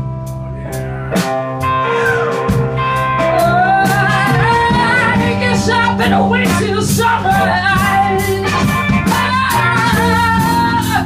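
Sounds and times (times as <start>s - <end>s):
blues band jamming: 0.0s - 11.0s
woman singing: 2.8s - 11.0s.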